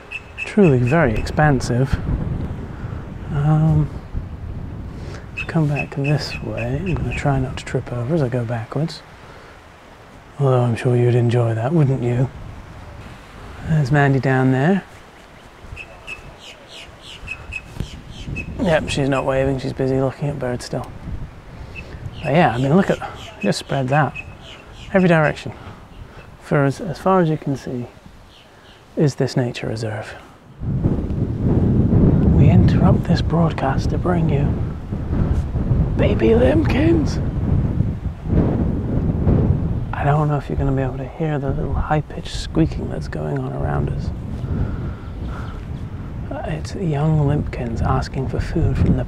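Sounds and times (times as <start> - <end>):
short high bird chirps: 0.0 - 0.8, 15.7 - 18.6, 21.7 - 25.0
down-slurred bird notes: 0.0 - 1.6, 5.3 - 7.4, 14.9 - 19.3, 21.7 - 26.4
wind buffeting microphone: 0.0 - 49.0.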